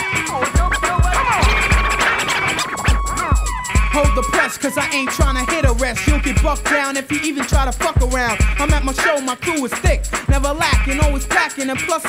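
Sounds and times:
hip hop beat: 0.0s - 12.0s
turntable scratching: 0.0s - 12.0s.

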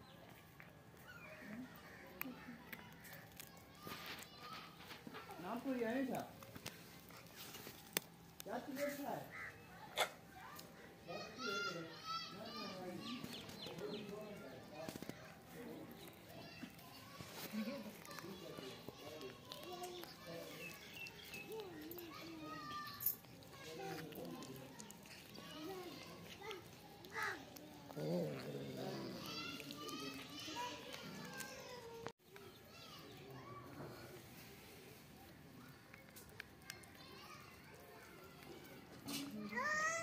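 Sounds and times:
children talking and playing: 0.0s - 40.0s
children's high-pitched calls: 39.4s - 40.0s.

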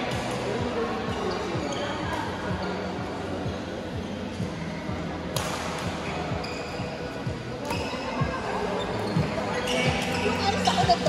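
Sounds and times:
voices in hall: 0.0s - 5.3s, 6.1s - 11.0s
rackets striking shuttlecock: 5.3s - 6.0s.

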